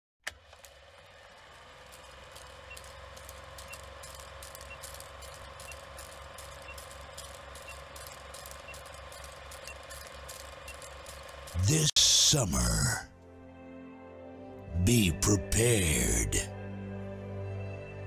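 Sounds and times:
film projector running hum: 0.2s - 11.9s
film crackle and pops: 1.7s - 11.6s.

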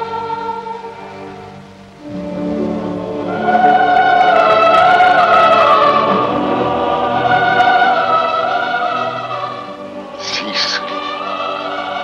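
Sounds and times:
choir singing held notes: 0.0s - 12.0s
orchestral accompaniment: 1.2s - 12.0s.

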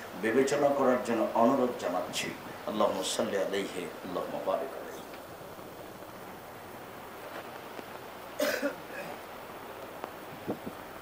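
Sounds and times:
faint background hiss: 0.0s - 11.0s
man coughing: 8.4s - 9.2s.

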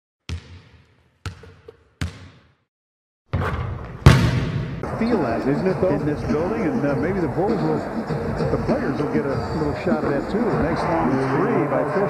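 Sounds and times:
basketball bouncing: 0.3s - 2.6s, 3.3s - 4.8s
arena crowd noise: 4.8s - 12.0s.

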